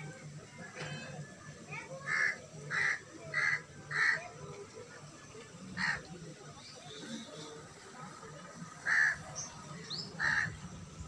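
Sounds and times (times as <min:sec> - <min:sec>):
crow cawing: 0:02.1 - 0:04.2, 0:05.8 - 0:06.1, 0:08.8 - 0:09.2, 0:10.2 - 0:10.6.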